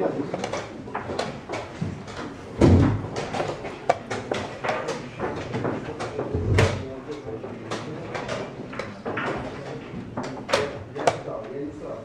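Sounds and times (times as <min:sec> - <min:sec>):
chess pieces knocking on board: 0:00.3 - 0:06.7.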